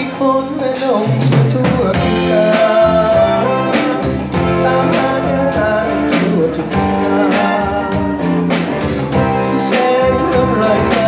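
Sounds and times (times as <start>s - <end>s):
live band playing: 0.0s - 11.0s
drum and cymbal hits: 0.6s - 11.0s.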